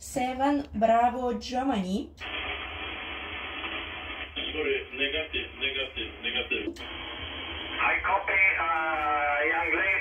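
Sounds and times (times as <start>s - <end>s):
radio static hiss: 2.2s - 10.0s.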